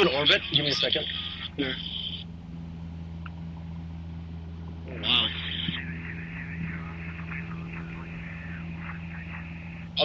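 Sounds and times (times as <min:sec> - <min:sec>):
faint voices: 0:00.0 - 0:02.3, 0:04.8 - 0:10.0
light aircraft engine drone: 0:00.0 - 0:10.0.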